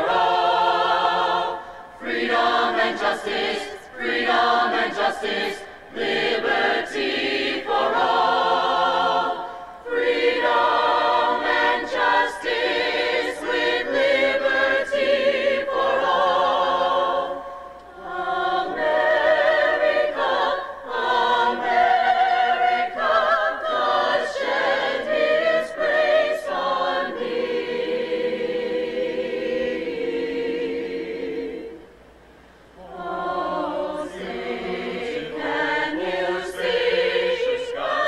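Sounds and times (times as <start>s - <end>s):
choir singing an anthem: 0.0s - 32.1s, 32.8s - 38.0s.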